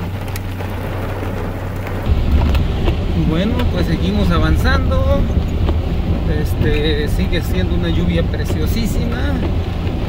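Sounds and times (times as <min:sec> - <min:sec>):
deep low rumble: 0:00.0 - 0:10.0
heavy rain pouring: 0:00.0 - 0:10.0
vehicle engine hum: 0:00.0 - 0:10.0.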